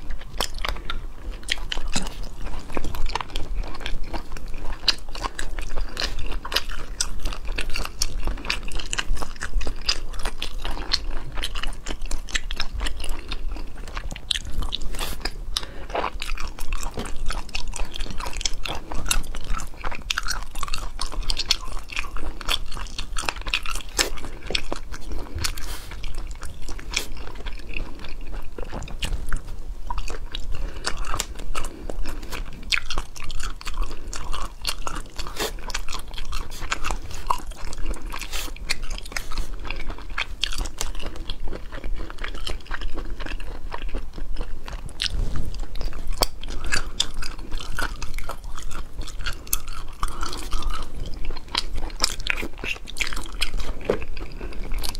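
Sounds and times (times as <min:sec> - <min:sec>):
crunches and clicks of eating: 0:00.0 - 0:54.9
person chewing food: 0:00.0 - 0:54.9.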